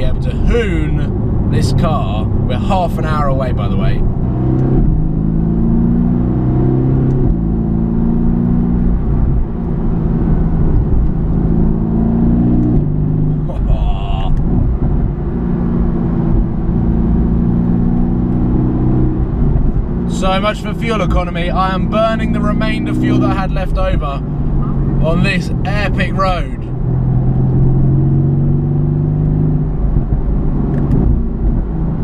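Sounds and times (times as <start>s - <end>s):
car engine accelerating: 0.0s - 32.0s.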